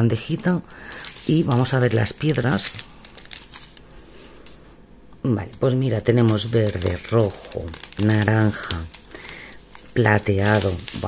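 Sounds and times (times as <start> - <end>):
plastic sachets rustling: 0.0 - 4.7, 5.3 - 11.0.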